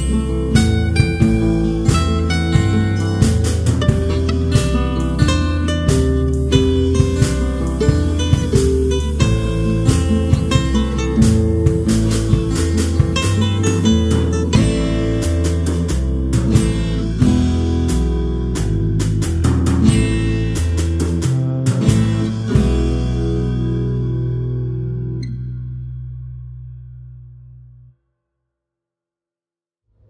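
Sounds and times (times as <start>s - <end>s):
instrumental background music: 0.0s - 25.8s.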